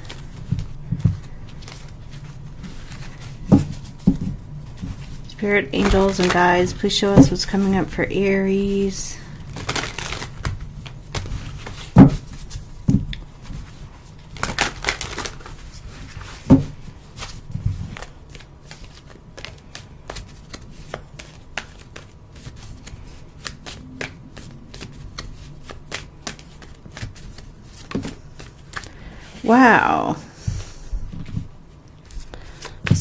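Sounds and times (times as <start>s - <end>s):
cards being shuffled: 0.0s - 29.6s, 30.5s - 33.0s.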